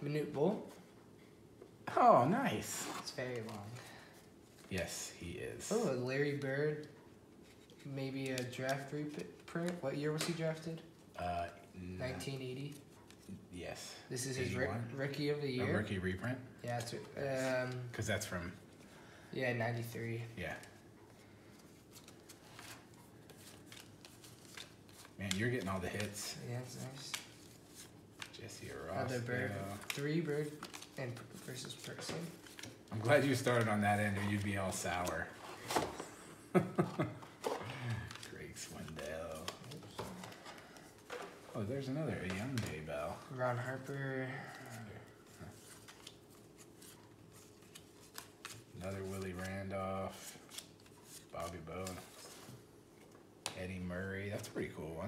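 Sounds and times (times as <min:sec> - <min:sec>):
trading cards flipped by hand: 0:21.5 - 0:36.0, 0:45.5 - 0:53.6.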